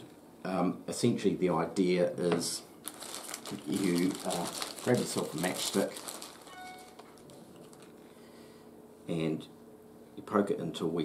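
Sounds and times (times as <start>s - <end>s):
plastic bag rustling: 2.8s - 8.0s.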